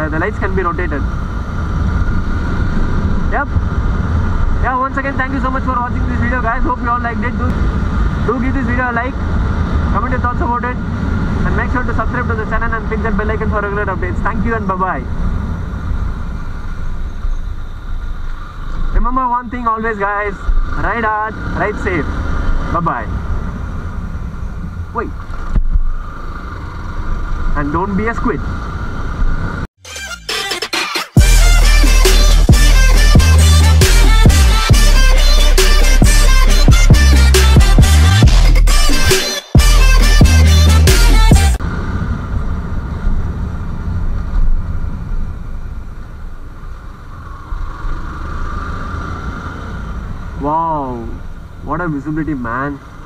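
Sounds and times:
wind and road noise: 0.0 - 29.8, 31.2 - 53.0
music: 29.8 - 41.6
motorcycle engine running: 31.2 - 45.4.

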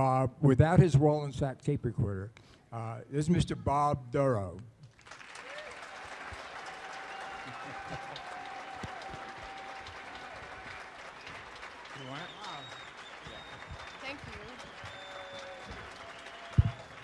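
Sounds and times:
audience applauding: 4.9 - 17.0.

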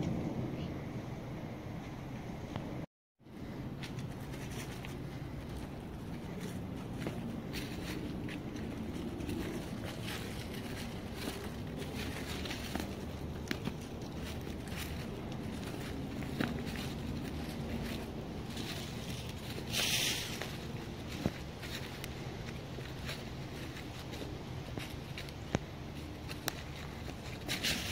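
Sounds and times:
low steady rumble: 0.0 - 27.9
leaves rustling: 3.3 - 27.9
footsteps crunching dry leaves: 3.7 - 27.9.

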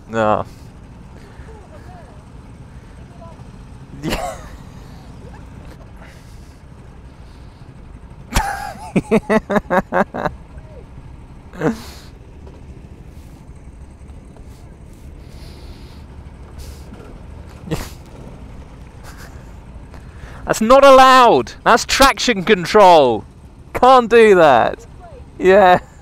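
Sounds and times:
person laughing: 4.0 - 6.4, 8.3 - 10.8, 11.5 - 12.1, 17.6 - 18.1, 19.0 - 19.6.

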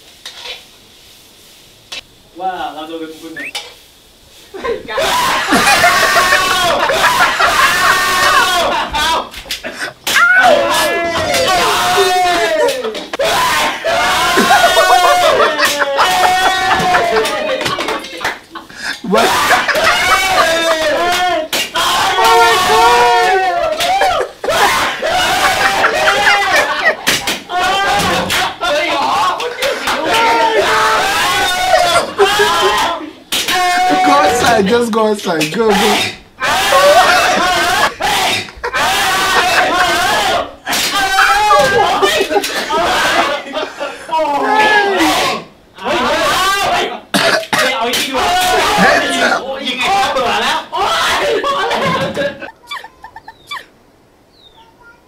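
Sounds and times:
falling squeak: 3.4 - 3.7
quick high blips: 3.4 - 3.7
men laughing and shouting: 4.6 - 34.8, 35.7 - 53.8.

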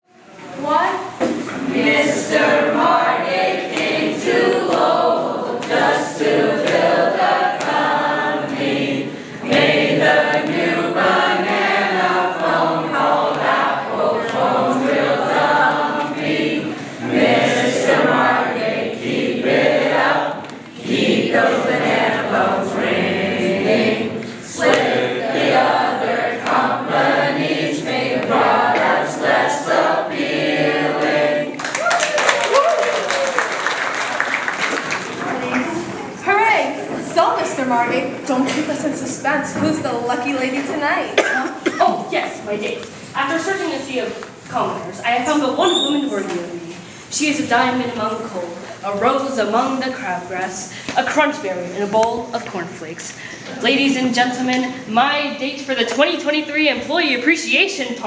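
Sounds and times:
group singing unaccompanied: 1.2 - 31.7
audience applause: 31.6 - 36.0.

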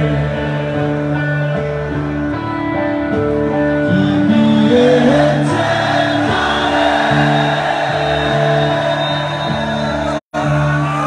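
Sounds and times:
live rock band music: 0.0 - 11.0
many voices singing: 4.0 - 11.0.

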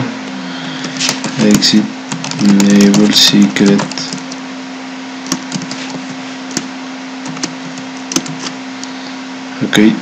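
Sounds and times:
low hum and hiss: 0.0 - 10.0
keyboard keystroke clicks: 7.3 - 8.5.

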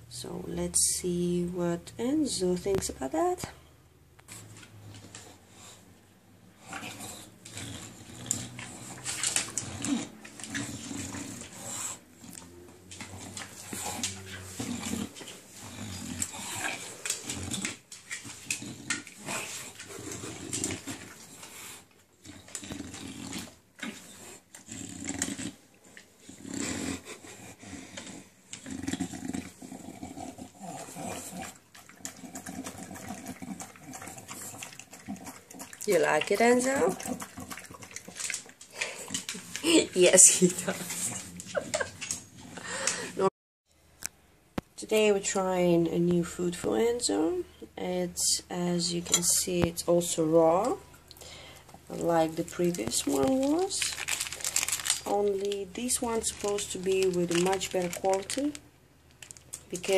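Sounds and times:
dog breathing and eating: 3.4 - 43.3, 50.0 - 59.9.

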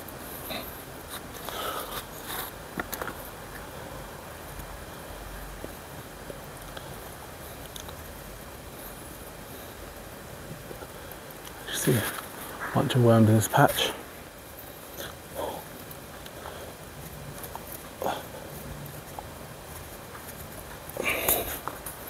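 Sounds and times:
faint background noise: 0.0 - 22.0
rustles and scrapes in soil: 0.1 - 22.0.

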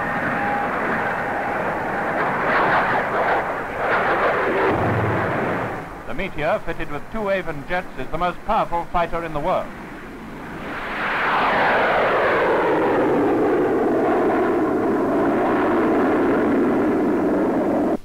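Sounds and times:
jet roar with falling whine: 0.0 - 18.0.

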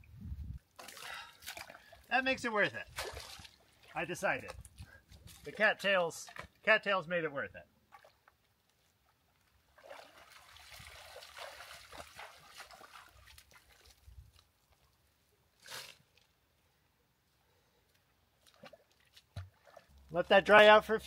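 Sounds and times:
water sloshing and splashing: 0.7 - 5.6, 7.8 - 8.4, 9.6 - 14.8, 18.4 - 20.1.

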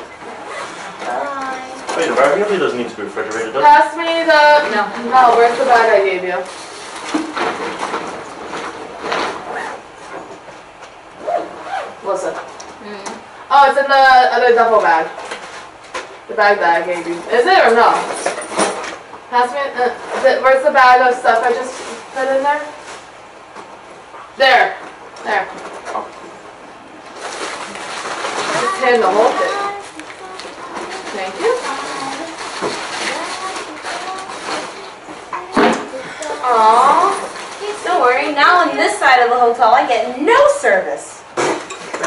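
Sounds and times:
fabric bags rustling: 27.1 - 35.0.

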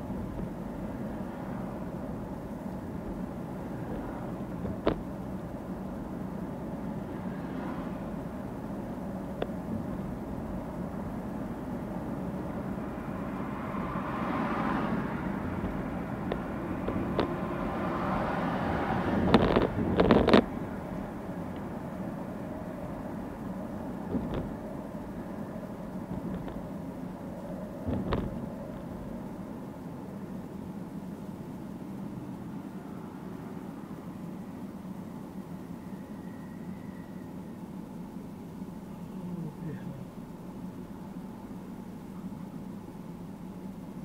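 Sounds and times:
car engine and tyre noise: 0.0 - 44.0.

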